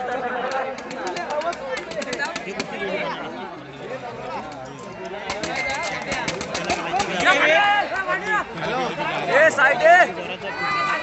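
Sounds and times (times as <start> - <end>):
crowd chattering and calling out: 0.0 - 11.0
loud shout: 7.2 - 8.5, 9.4 - 11.0.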